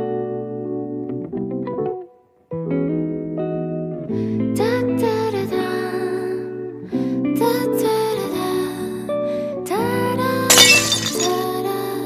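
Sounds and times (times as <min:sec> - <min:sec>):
glass shattering effect: 0:10.5 - 0:11.5.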